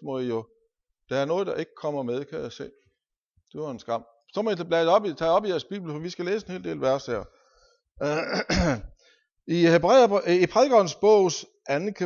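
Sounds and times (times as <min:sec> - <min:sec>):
man speaking: 0:00.0 - 0:00.4, 0:01.1 - 0:02.8, 0:03.5 - 0:07.3, 0:08.0 - 0:08.8, 0:09.5 - 0:12.0
man clearing throat: 0:08.0 - 0:08.9.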